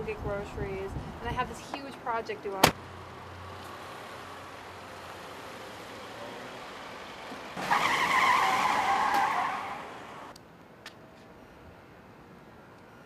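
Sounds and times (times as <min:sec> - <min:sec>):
car tyres squealing: 0:07.6 - 0:10.3.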